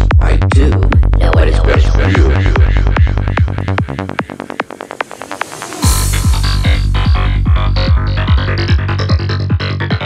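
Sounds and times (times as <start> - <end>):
rolling bassline: 0.0 - 10.0
psychedelic trance music: 1.4 - 10.0
fast kick drum: 5.8 - 10.0.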